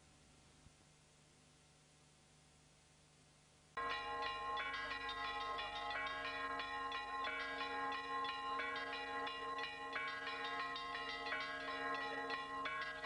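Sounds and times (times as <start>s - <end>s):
bells chiming: 3.8s - 13.0s.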